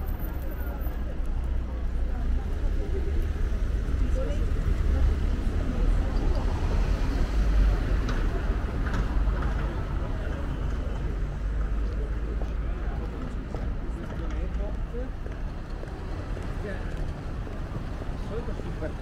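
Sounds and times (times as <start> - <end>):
people talking: 0.0 - 15.2, 16.2 - 19.0
car traffic: 0.0 - 19.0.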